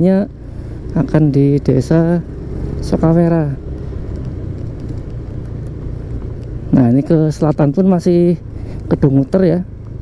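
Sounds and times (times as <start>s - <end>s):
man talking: 0.0s - 3.6s, 6.7s - 9.7s
motorcycle engine rumble: 0.0s - 10.0s
road and wind noise: 0.0s - 10.0s.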